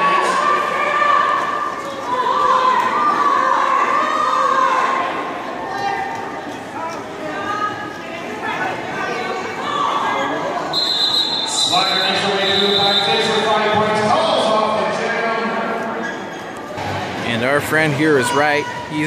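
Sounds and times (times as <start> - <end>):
voices calling and chattering: 0.0 - 19.0
steady high whistle tone: 10.7 - 13.4.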